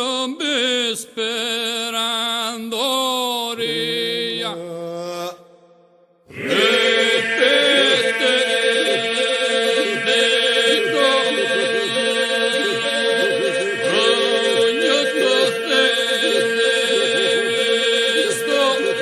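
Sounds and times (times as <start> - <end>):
polyphonic singing over drone: 6.3 - 19.0.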